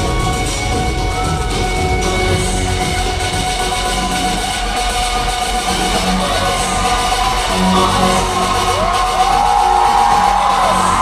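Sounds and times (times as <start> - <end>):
steady bass beat: 0.0 - 11.0.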